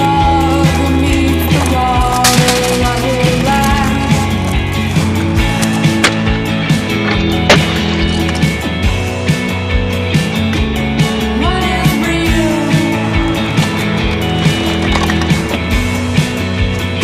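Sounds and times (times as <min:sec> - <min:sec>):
scooter clacking on concrete and metal: 0:00.0 - 0:09.0, 0:12.4 - 0:16.8.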